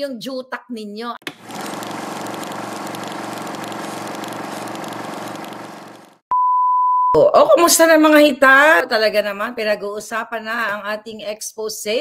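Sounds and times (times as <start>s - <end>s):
synthesized drone with pulsing hum: 1.6s - 6.2s.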